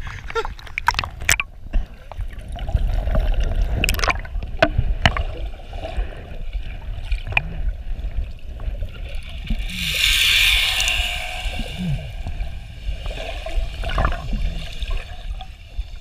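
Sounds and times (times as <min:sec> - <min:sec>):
muffled underwater gurgling: 0:03.6 - 0:16.0.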